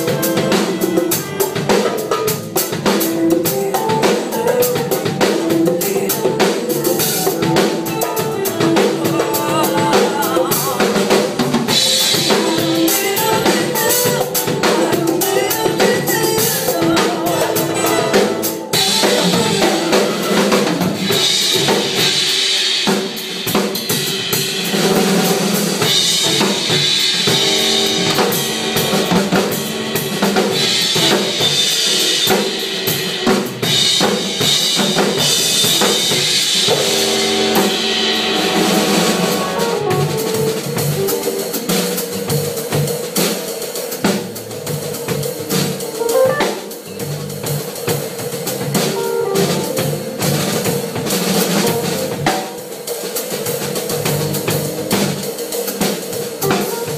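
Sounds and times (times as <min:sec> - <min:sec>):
drum kit groove: 0:00.0 - 0:56.9.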